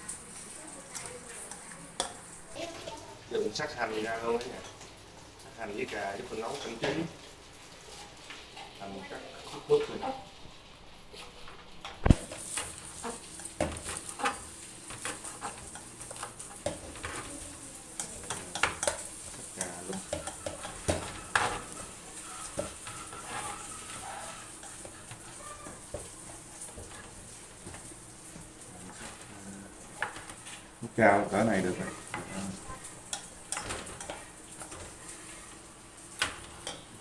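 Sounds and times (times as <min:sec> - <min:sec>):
spoon scraping metal bowl: 0:19.6 - 0:25.1.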